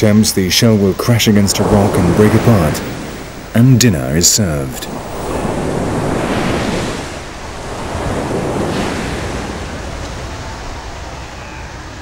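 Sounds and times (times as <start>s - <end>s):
surf washing up pebble beach: 0.8s - 11.0s.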